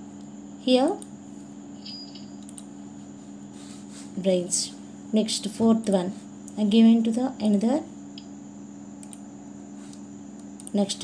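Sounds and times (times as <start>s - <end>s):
low electrical hum: 0.0s - 11.0s
computer mouse clicks: 0.8s - 1.1s, 2.2s - 2.7s, 9.0s - 9.2s, 9.9s - 10.8s.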